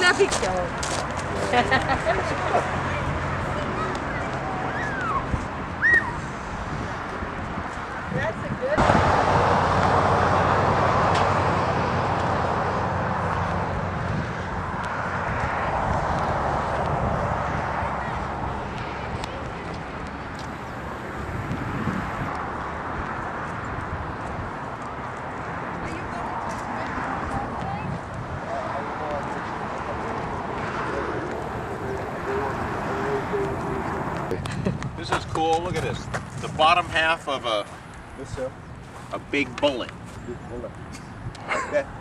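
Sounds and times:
faint voices: 0:00.0 - 0:08.8, 0:17.1 - 0:22.0, 0:25.7 - 0:34.5
wind rumbling on microphone: 0:00.0 - 0:36.9
jet aircraft overhead: 0:28.4 - 0:34.4.

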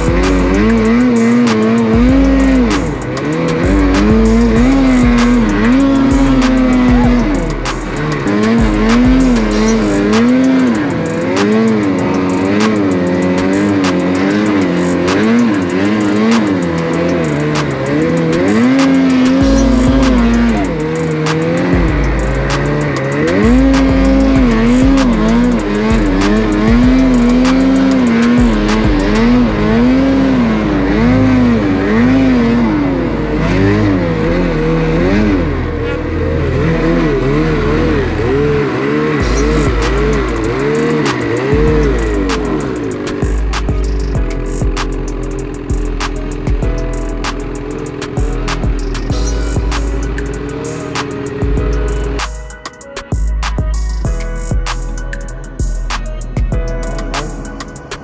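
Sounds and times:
background music with beat: 0:00.0 - 0:32.6, 0:38.8 - 0:58.0
snowmobile engine revving: 0:00.0 - 0:58.0.

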